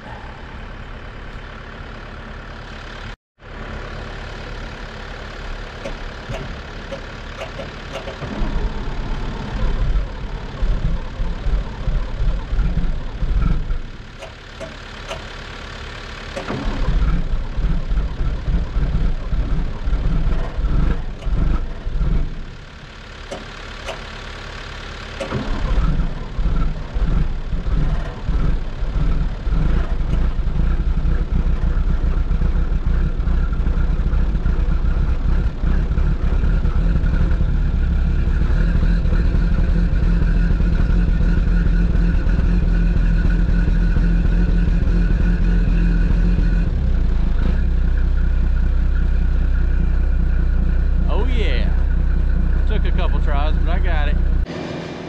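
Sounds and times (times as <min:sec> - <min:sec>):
diesel truck engine running roughly: 0:00.0 - 0:55.0.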